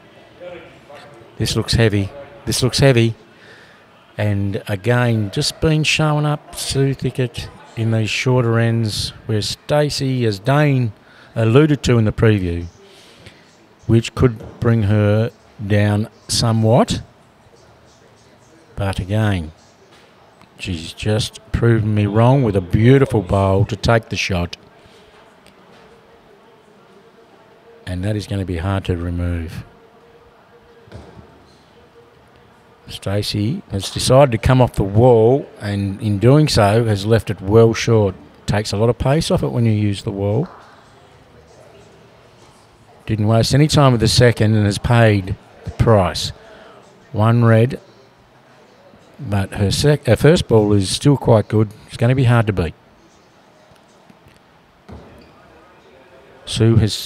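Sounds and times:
ball landing with thud: 30.9s - 31.4s, 54.9s - 55.2s.

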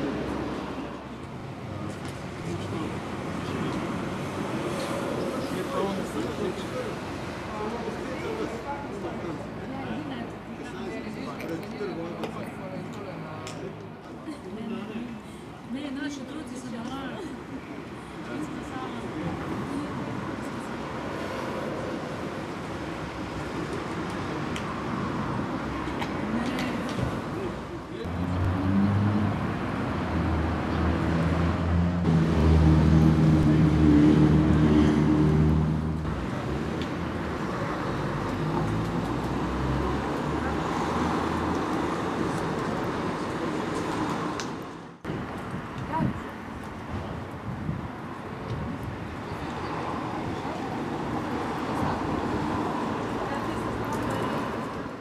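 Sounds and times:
road traffic: 0.0s - 55.0s
people talking: 45.8s - 46.3s.

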